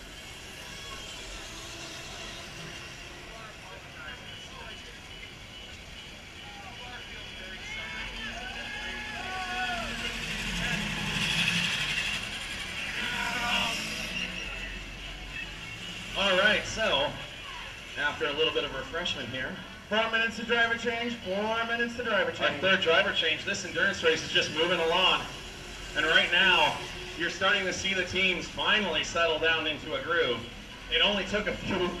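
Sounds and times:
distant voices: 0:00.0 - 0:32.0
electric racing carts on asphalt: 0:00.0 - 0:32.0.

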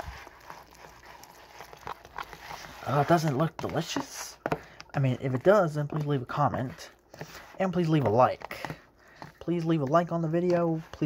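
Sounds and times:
spoon scraping plastic container: 0:00.0 - 0:11.0.

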